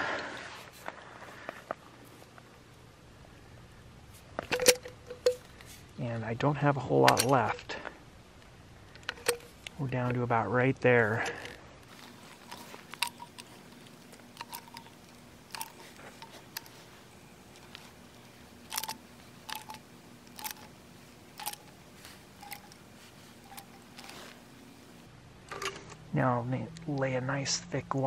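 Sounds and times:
low steady hum: 0.0s - 28.0s
plastic cartridge clicks and crackles: 11.3s - 16.8s, 17.5s - 20.7s.

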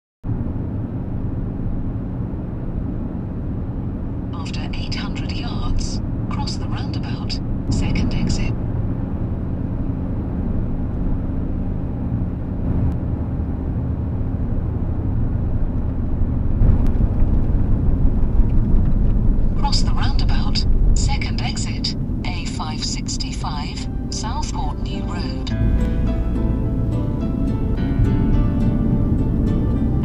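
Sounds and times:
car engine and road noise: 0.2s - 30.0s.

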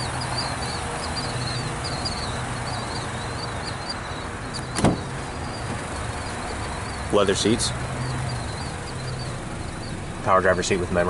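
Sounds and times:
bird chirping: 0.0s - 11.0s
steady background rumble: 0.0s - 11.0s
car door latch clicking open: 4.6s - 5.1s.

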